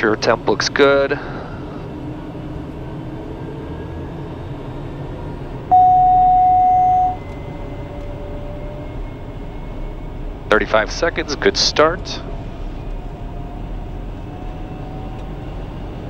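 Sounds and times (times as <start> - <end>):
loud steady single-pitch tone: 5.7 - 7.4.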